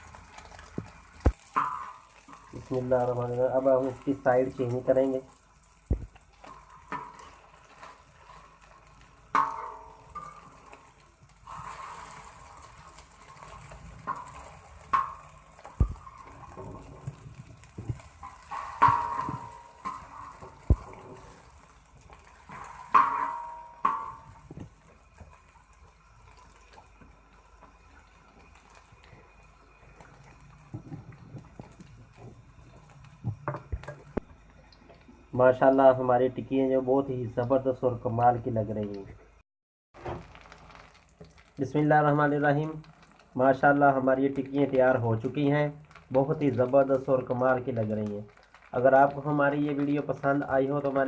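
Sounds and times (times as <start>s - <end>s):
faint steady sizzle: 0.0s - 51.0s.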